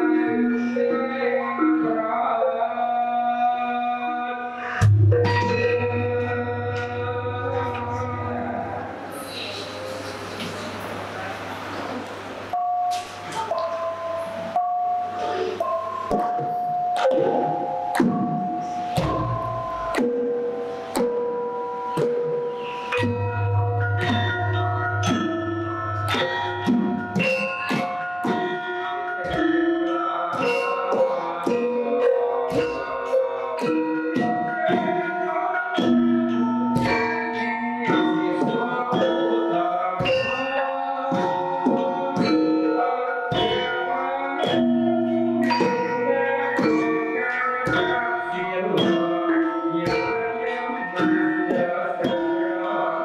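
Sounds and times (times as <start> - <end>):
gamelan ringing notes: 4.4 - 10.0, 12.4 - 53.0.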